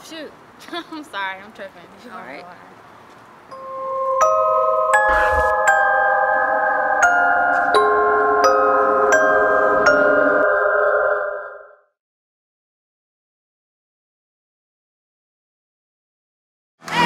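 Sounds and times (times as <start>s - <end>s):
bell-like chime notes: 3.6s - 11.8s
low thud: 5.1s - 5.6s.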